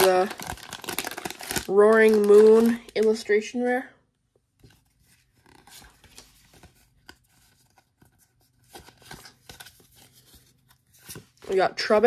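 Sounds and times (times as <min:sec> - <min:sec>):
trading cards rustling and clicking: 0:04.5 - 0:11.7.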